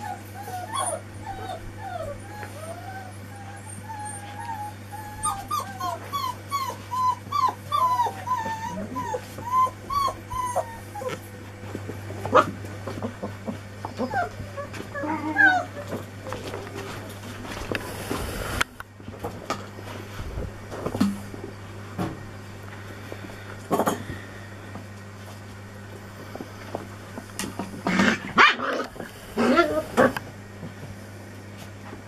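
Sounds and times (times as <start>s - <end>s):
puppies whimpering and yipping: 0.0s - 11.4s, 12.9s - 17.0s, 29.4s - 30.2s.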